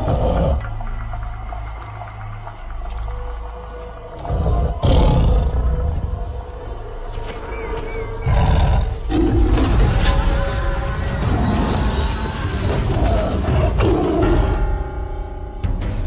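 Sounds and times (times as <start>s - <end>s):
big cat roaring: 4.2s - 6.2s, 8.2s - 10.1s.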